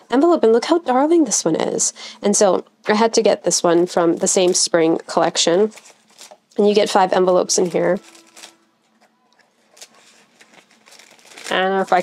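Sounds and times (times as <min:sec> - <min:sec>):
paper envelopes rustling: 0:03.8 - 0:12.0.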